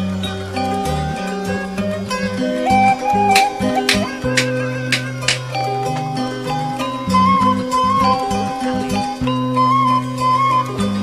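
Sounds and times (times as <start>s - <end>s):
zither-like plucked melody: 0.0s - 11.0s
low held tones: 0.5s - 10.7s.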